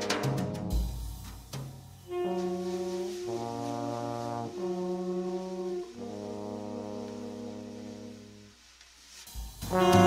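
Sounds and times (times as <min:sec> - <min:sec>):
trombone sustained low notes: 0:02.0 - 0:08.6, 0:09.6 - 0:10.0
tenor saxophone sustained notes: 0:02.1 - 0:08.6.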